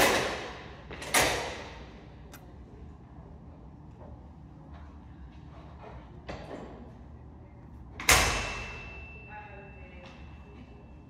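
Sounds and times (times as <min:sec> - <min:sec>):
thin high ringing tone: 0:08.4 - 0:11.0.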